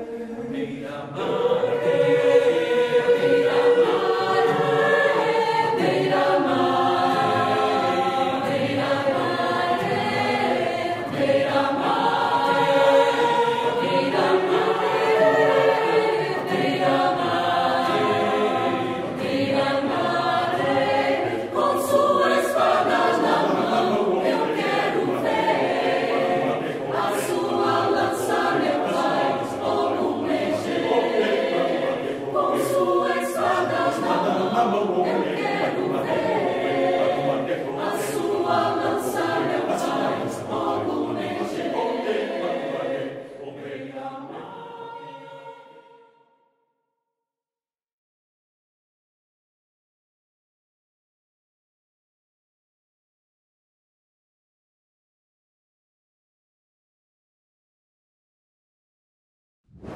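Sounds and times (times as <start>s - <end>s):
mixed choir singing: 0.0s - 46.4s.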